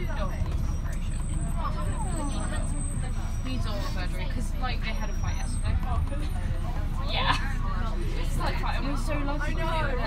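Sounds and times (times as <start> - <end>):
passengers talking: 0.0 - 10.0.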